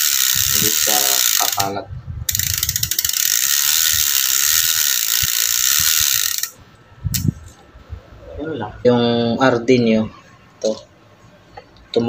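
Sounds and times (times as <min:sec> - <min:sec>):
bicycle freehub ratchet clicking: 0:00.0 - 0:07.3.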